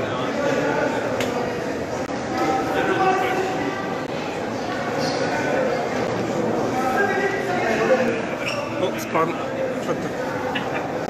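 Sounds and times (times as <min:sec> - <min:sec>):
people talking in a hall: 0:00.0 - 0:11.0.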